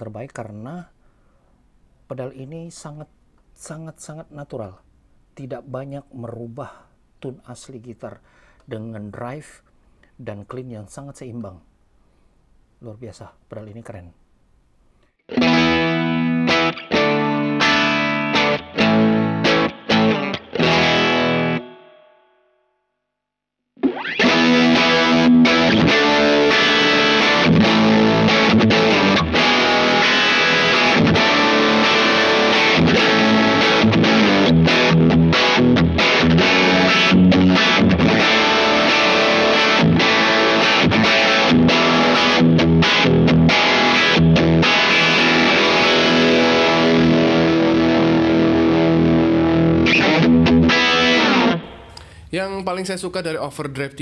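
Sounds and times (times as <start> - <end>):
overdriven electric guitar: 15.3 - 22.2, 23.8 - 52.3.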